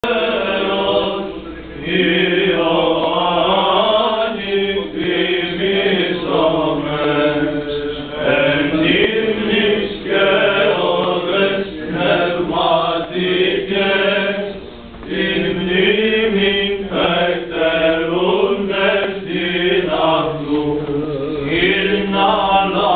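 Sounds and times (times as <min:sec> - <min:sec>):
voices chanting a melody: 0:00.0 - 0:22.9.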